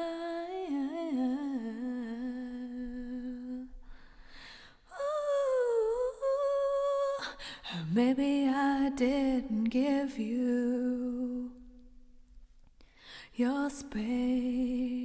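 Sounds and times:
woman singing wordless line: 0.0 - 3.7, 4.9 - 11.6, 13.4 - 15.0
woman breathing: 3.7 - 4.9, 7.3 - 7.9, 12.8 - 13.4.

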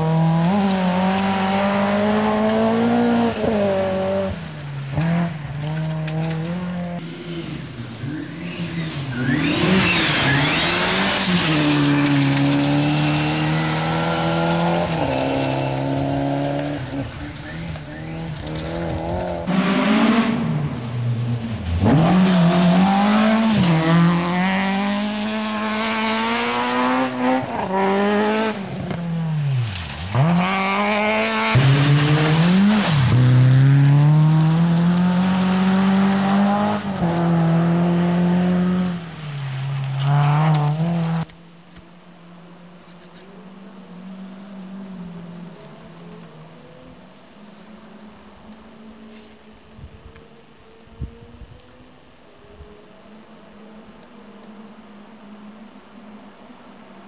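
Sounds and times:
rally car engines revving: 0.0 - 57.0.

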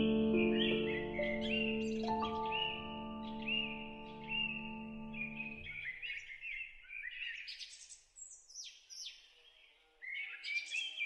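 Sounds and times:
soft music chord: 0.0 - 5.8
songbird chirping: 0.0 - 11.0.

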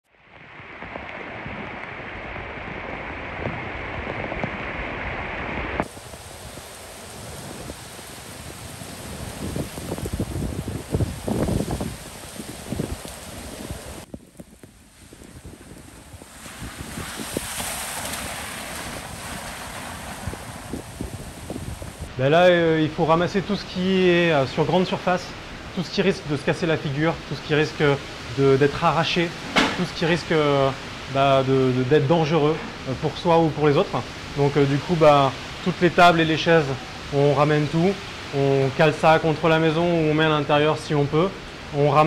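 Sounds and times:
gusty wind through trees: 0.0 - 42.0
rain: 0.0 - 42.0
wind buffeting microphone: 0.3 - 22.4.

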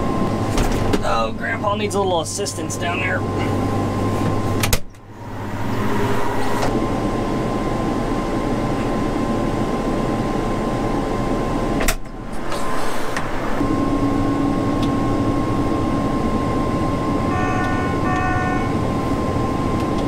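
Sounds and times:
harvester engine running: 0.0 - 20.0
steady hum: 0.0 - 20.0
cab warning beep: 17.2 - 18.7.

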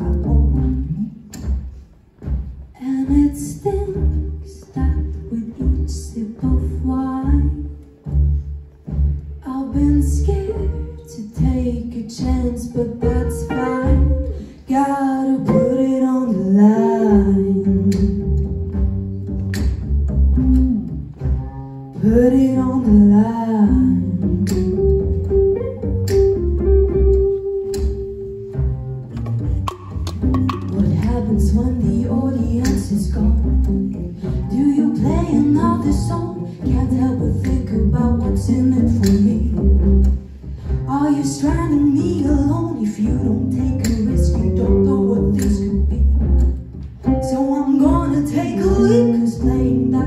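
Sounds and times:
live jazz soul band playing: 0.0 - 50.0.

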